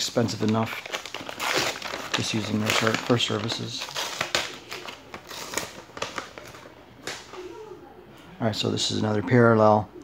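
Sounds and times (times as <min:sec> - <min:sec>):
paper rustling and crinkling: 0:00.0 - 0:07.3.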